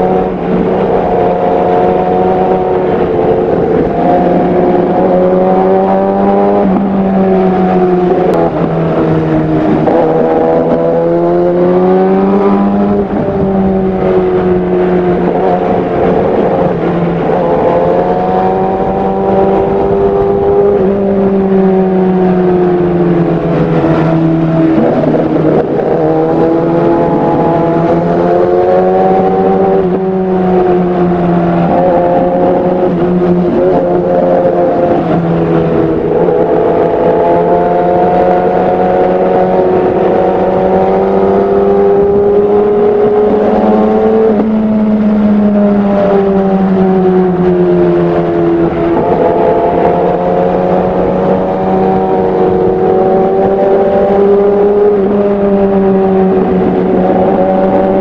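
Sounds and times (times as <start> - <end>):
wind noise: 0.0 - 58.0.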